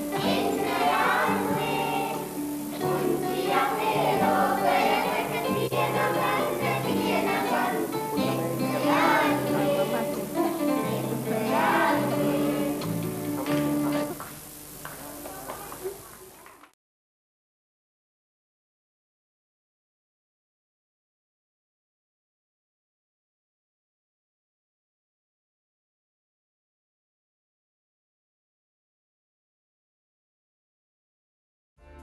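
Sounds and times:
group of voices singing: 0.0 - 13.2
sung music: 0.0 - 14.2
instrumental backing: 0.0 - 15.8.

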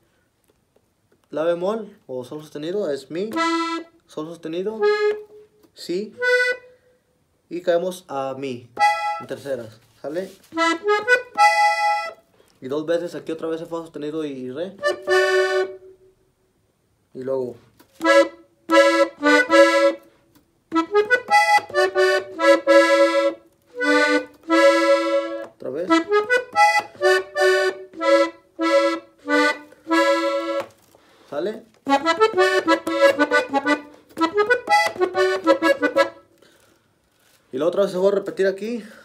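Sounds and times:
accordion melody: 3.0 - 7.3, 8.7 - 14.0, 14.7 - 16.3, 17.8 - 36.8.

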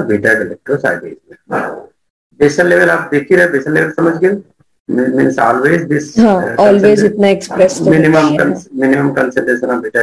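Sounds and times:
man speaking in broken bursts: 0.0 - 10.0.

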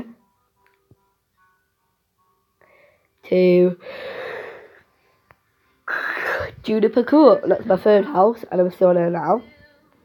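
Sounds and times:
person breathing out noisily: 3.8 - 4.8
sharp breath: 3.8 - 4.8.

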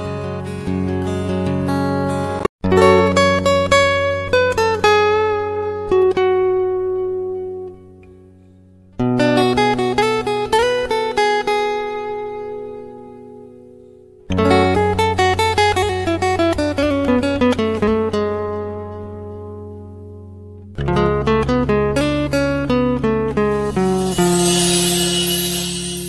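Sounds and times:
plucked acoustic guitar music: 0.0 - 8.3, 9.0 - 26.0.

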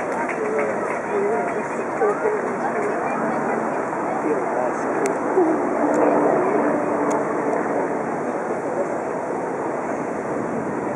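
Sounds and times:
fountain water rushing: 0.0 - 10.9.

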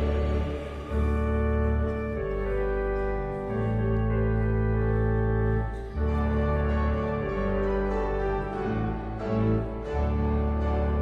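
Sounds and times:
organ playing a hymn: 0.0 - 11.0.

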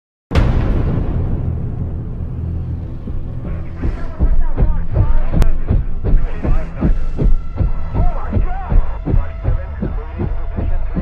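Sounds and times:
deep rumble: 0.3 - 11.0
dramatic score music: 0.4 - 11.0.

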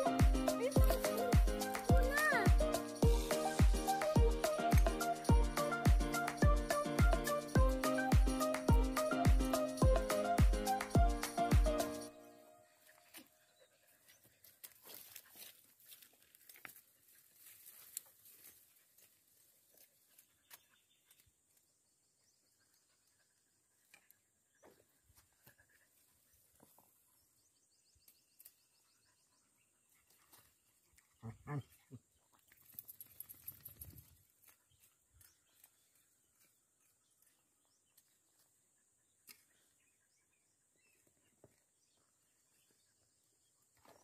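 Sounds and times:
plant stems rustling: 14.4 - 20.3.

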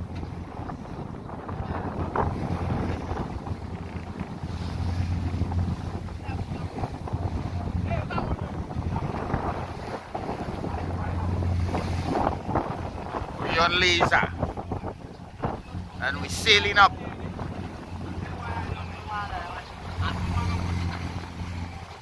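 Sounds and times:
sea washing along hull: 0.0 - 22.0
wind gusting over microphone: 0.0 - 22.0.

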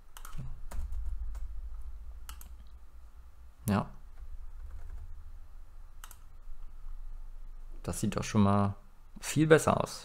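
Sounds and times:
keyboard keystrokes and clicks: 0.1 - 1.5, 2.2 - 2.8, 6.0 - 6.3.

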